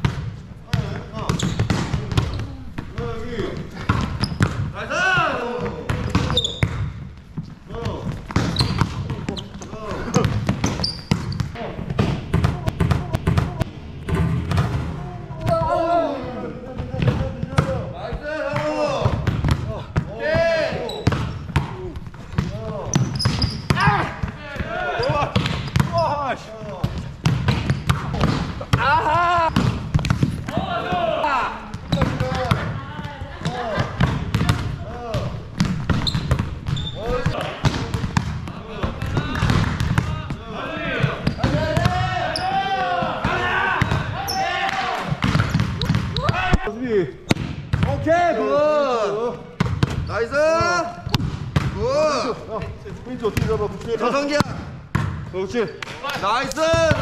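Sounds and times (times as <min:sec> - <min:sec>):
shoe squeaks: 0:01.3 - 0:02.6, 0:04.1 - 0:04.5, 0:06.0 - 0:06.8, 0:08.4 - 0:11.6, 0:20.8 - 0:21.5, 0:22.9 - 0:24.0, 0:24.9 - 0:26.3, 0:36.0 - 0:37.3, 0:41.2 - 0:41.6, 0:42.2 - 0:42.6, 0:45.4 - 0:46.4
players calling out: 0:07.7 - 0:27.1, 0:27.7 - 0:47.2.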